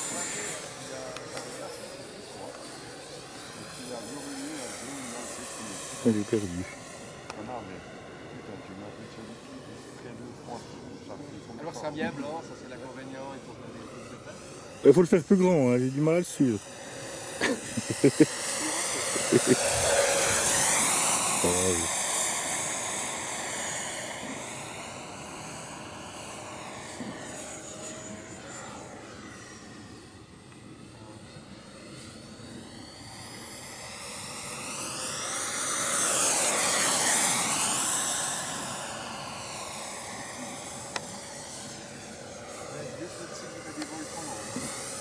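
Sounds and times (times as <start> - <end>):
electric ducted fan whine: 0.0 - 45.0.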